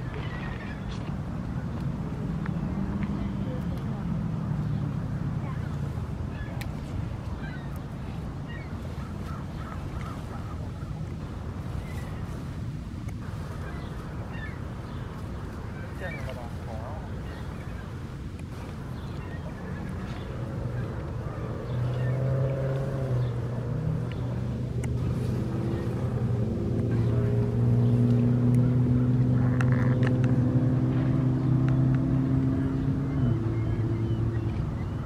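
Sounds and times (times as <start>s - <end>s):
engine hum passing by: 0.0s - 35.0s.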